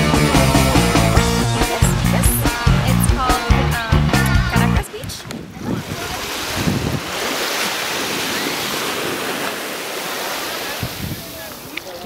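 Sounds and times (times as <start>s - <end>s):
small waves washing on beach: 4.8s - 12.0s.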